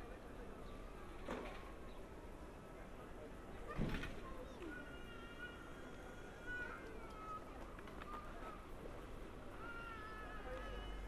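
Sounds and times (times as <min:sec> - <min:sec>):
busy square crowd noise: 0:00.0 - 0:11.0.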